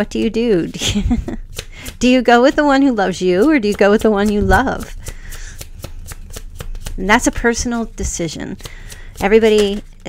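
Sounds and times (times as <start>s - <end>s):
cards being shuffled: 1.4s - 2.1s, 3.1s - 10.0s.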